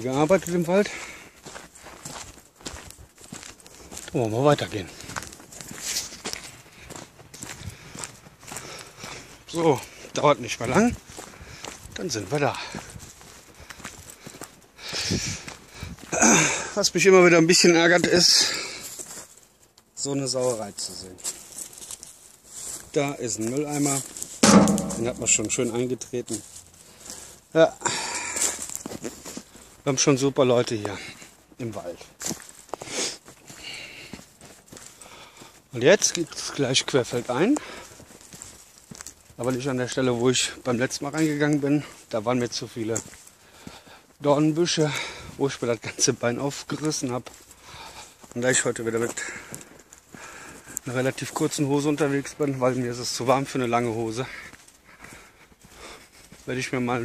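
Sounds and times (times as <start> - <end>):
footsteps on forest path: 0.0 - 57.0
loud knock: 24.4 - 25.4.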